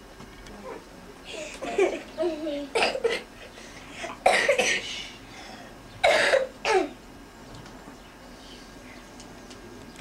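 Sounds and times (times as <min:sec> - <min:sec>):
person coughing: 0:02.8 - 0:03.3, 0:04.2 - 0:05.0, 0:06.0 - 0:07.0.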